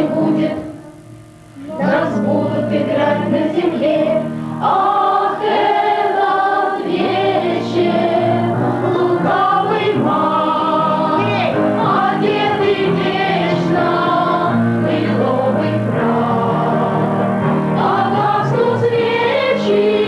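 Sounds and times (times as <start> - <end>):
young performers singing in chorus: 0.0 - 1.0, 1.6 - 20.0.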